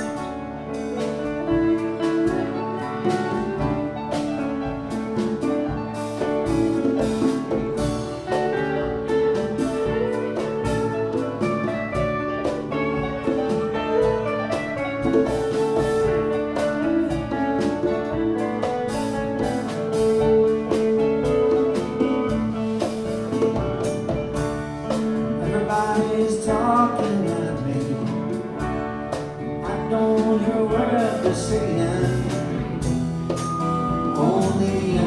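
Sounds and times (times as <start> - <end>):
bass: 0.0 - 35.0
electric guitars: 0.0 - 35.0
keyboard: 0.0 - 35.0.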